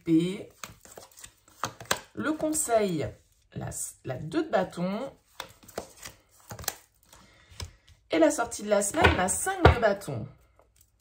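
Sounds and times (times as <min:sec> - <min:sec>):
cards tapping and snapping: 0:00.5 - 0:02.2, 0:05.3 - 0:07.9.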